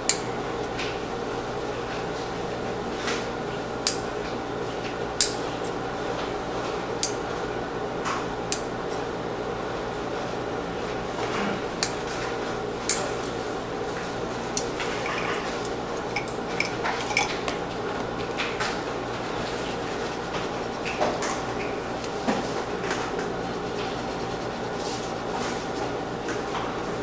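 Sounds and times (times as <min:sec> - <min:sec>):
steady hum: 0:11.6 - 0:27.0.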